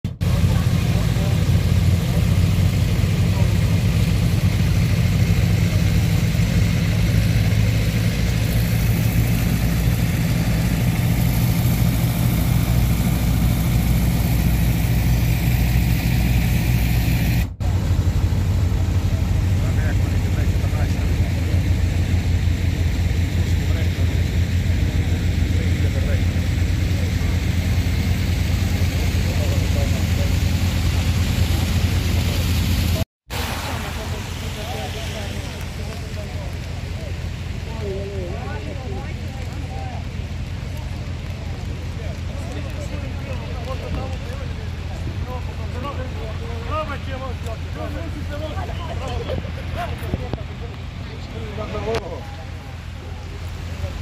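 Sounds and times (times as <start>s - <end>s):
pump engines humming: 0.1s - 54.0s
water gushing: 0.1s - 54.0s.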